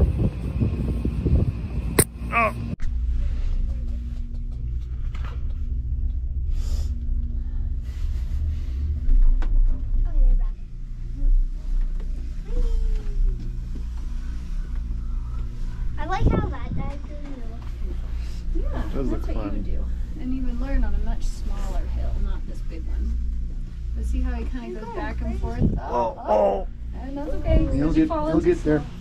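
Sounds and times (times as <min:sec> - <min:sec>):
faint steady hum: 0:00.0 - 0:29.0
low steady rumble: 0:00.0 - 0:29.0
voices: 0:24.0 - 0:29.0.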